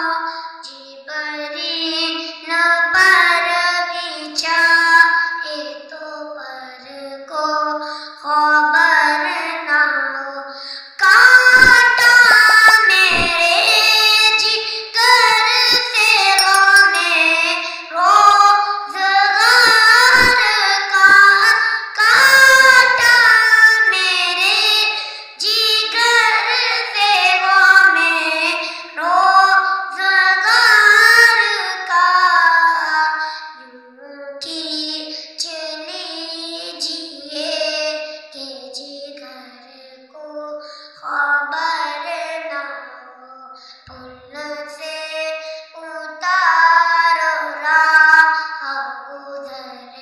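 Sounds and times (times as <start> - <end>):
boy singing unaccompanied: 0.0 - 50.0.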